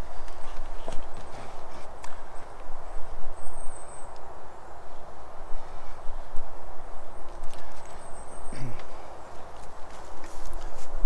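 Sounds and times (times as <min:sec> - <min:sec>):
footsteps on forest ground: 0:08.6 - 0:11.0.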